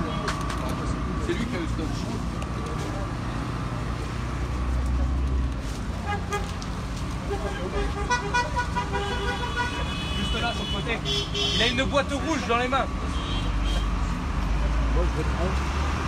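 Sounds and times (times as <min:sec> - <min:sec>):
road traffic passing: 0:00.0 - 0:16.0
car horn toots: 0:07.3 - 0:11.9.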